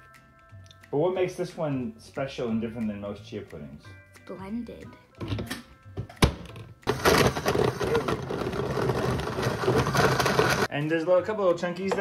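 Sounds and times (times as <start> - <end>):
blender running: 6.9 - 10.7.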